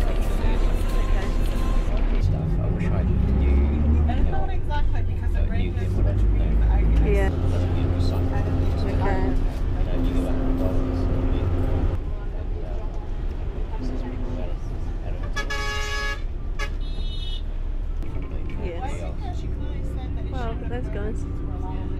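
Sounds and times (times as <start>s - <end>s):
people talking: 0.0s - 15.3s, 18.2s - 21.9s
truck engine and road noise: 0.0s - 21.9s.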